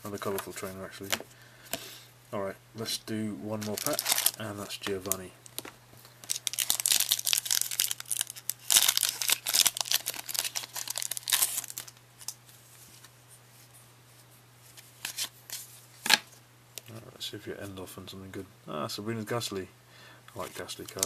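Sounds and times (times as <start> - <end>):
foil wrapper tearing and crinkling: 3.6 - 4.4, 6.2 - 12.4.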